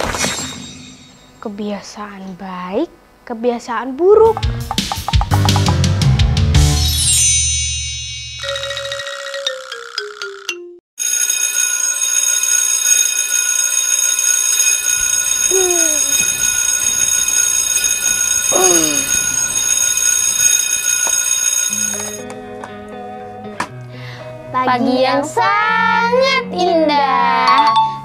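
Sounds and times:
music: 4.2s - 10.8s, 22.2s - 28.0s
descending chime jingle: 6.8s - 22.2s
alarm clock bell ringing: 7.0s - 22.2s.

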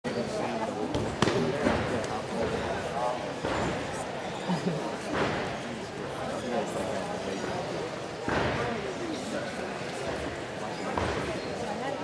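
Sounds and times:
people talking: 0.1s - 12.0s.

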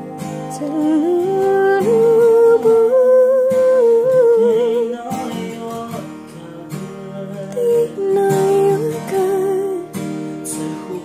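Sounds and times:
acoustic guitar: 0.0s - 11.0s
man singing wordless notes: 0.0s - 11.0s.

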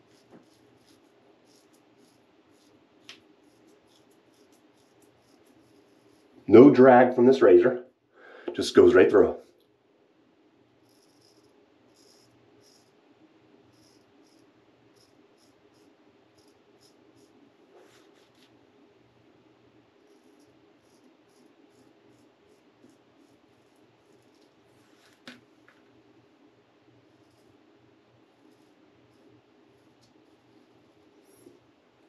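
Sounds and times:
razor scraping stubble: 0.0s - 6.4s, 13.8s - 18.5s, 20.0s - 25.3s.

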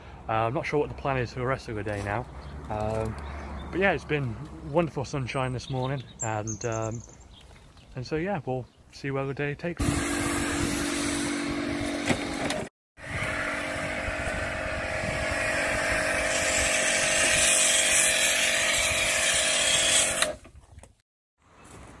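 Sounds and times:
pressure washer motor hum: 9.8s - 20.4s.

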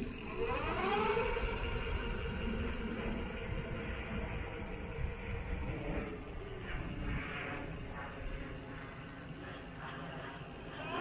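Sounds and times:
electric hub motor whine: 0.0s - 11.0s.

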